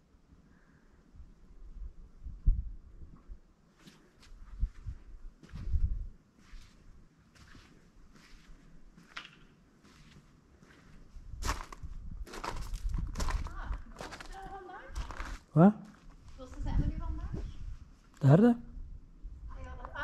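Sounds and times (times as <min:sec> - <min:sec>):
footsteps on paved path: 0:03.8 - 0:17.6.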